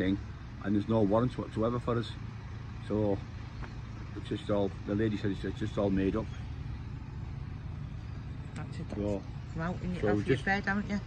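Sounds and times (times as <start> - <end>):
low outdoor rumble: 0.0 - 11.0
man speaking: 10.0 - 10.4.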